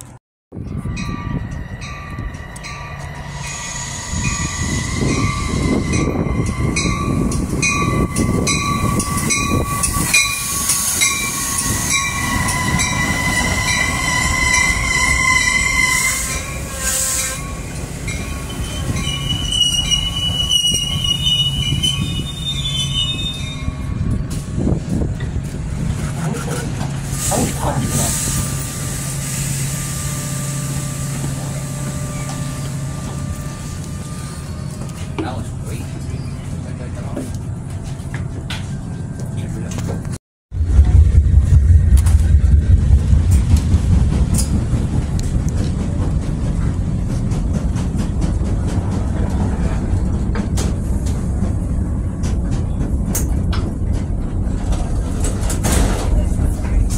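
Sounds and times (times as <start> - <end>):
train wheels rumbling: 0.0 - 56.9
standing train humming: 0.6 - 56.9
train brakes squealing: 1.0 - 24.2, 27.0 - 35.1, 35.7 - 36.6.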